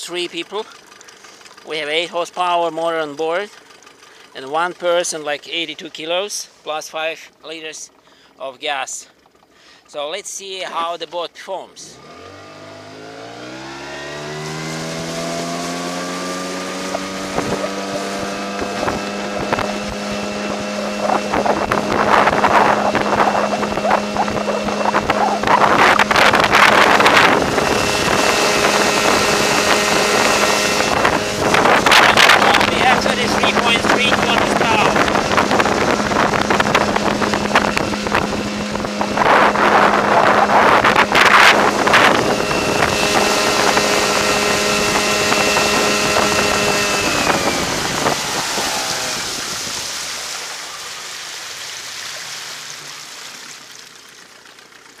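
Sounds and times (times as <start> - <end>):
outboard motor running: 0.0 - 55.0
rushing water: 14.1 - 55.0
wind noise: 16.1 - 50.1.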